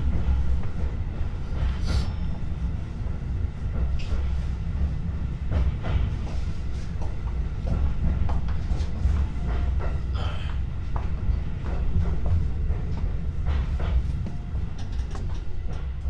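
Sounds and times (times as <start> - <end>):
train rumbling inside car: 0.0 - 16.0.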